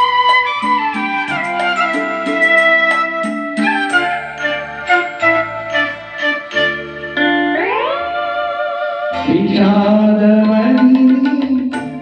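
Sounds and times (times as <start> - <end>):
instrumental accompaniment: 0.0 - 12.0
man singing: 9.2 - 12.0.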